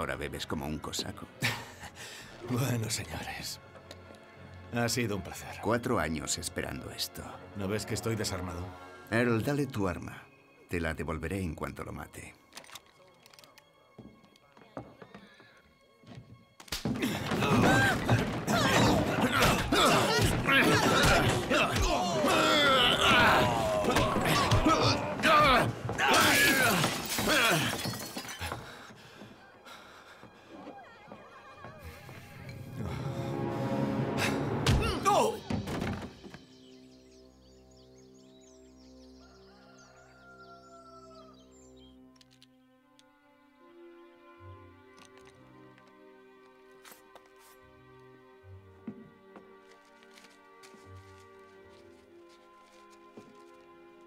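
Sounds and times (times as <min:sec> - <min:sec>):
faint tense film music: 0:00.0 - 0:54.0
person crying out: 0:17.4 - 0:27.7
birds chirping: 0:35.3 - 0:43.0.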